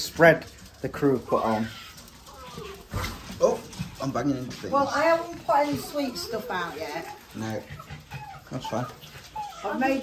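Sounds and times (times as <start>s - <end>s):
small dog whimpering: 1.3s - 3.6s, 5.7s - 10.0s.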